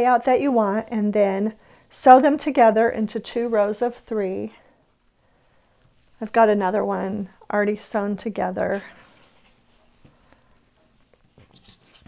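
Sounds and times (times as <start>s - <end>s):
fabric rustling: 2.2s - 7.0s, 8.7s - 12.0s.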